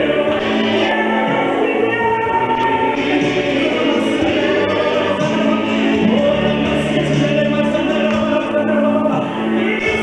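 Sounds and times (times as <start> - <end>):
woman singing into a microphone: 0.0 - 6.9
voices singing along: 0.0 - 10.0.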